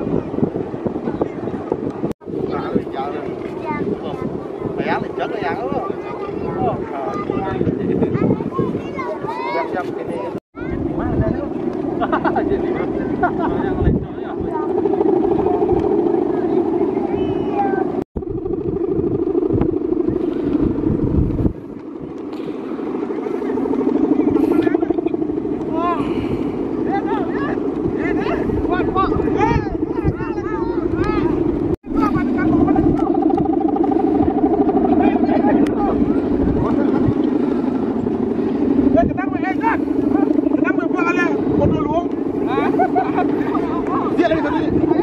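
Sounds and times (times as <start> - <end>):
kite bow hummer droning: 0.0 - 45.0.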